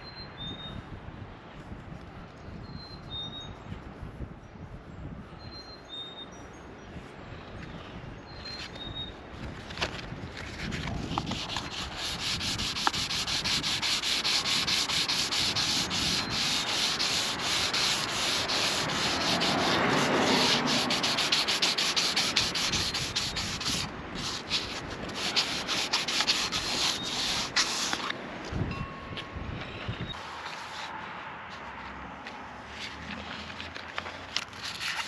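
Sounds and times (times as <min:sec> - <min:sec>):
sandpaper rubbing on fiberglass: 0:10.9 - 0:28.1, 0:30.4 - 0:30.9.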